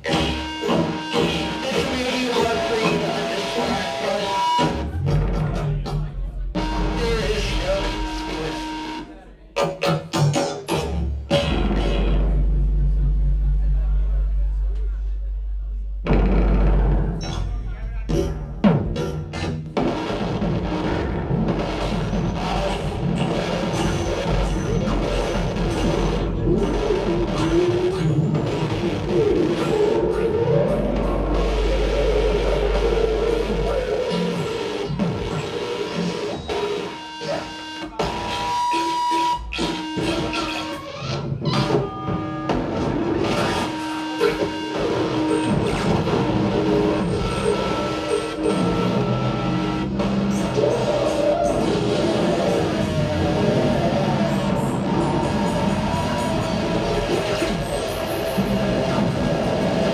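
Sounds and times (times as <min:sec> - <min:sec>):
loud noisy live music: 0:00.0 - 0:14.1, 0:16.1 - 0:59.9
deep low drone: 0:11.6 - 0:18.0.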